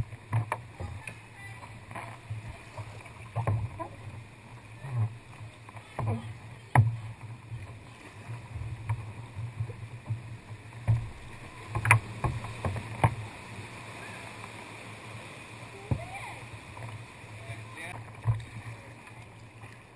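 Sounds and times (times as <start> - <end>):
kayak paddle splashing: 0.0 - 19.9
water washing against hull: 0.0 - 19.9.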